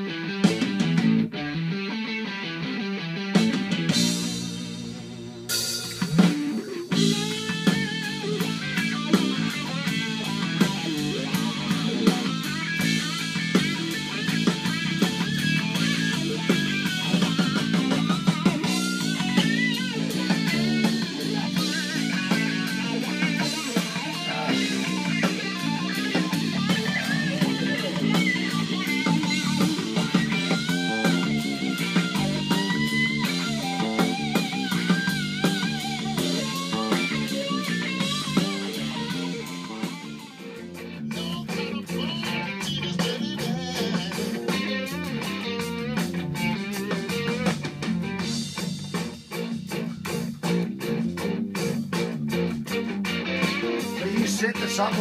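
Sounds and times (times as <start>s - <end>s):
bass and drums groove: 0.0s - 1.9s, 2.9s - 55.0s
blues guitar lead: 0.0s - 55.0s.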